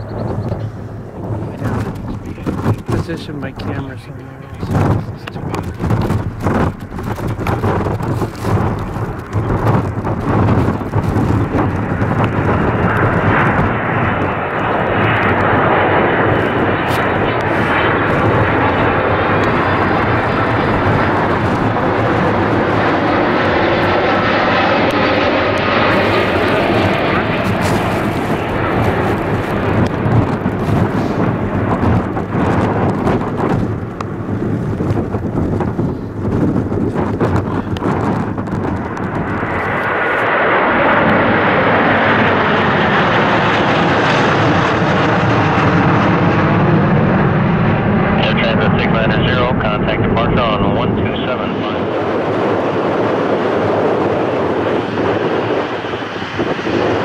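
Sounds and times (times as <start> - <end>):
jet engines passing close: 0.0 - 57.0
second louder jet engines: 0.0 - 57.0.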